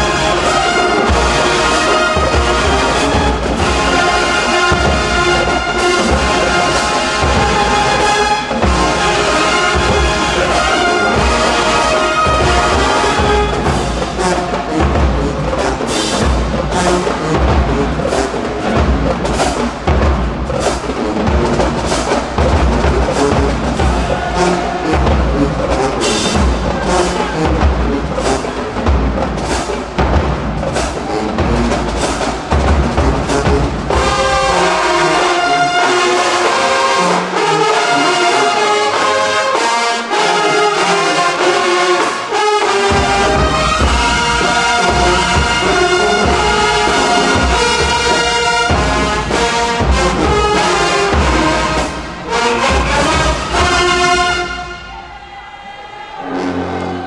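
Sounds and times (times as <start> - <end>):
marching band playing: 0.0 - 57.0
trumpets and horns: 0.0 - 57.0
bass drums and snares: 12.3 - 34.5.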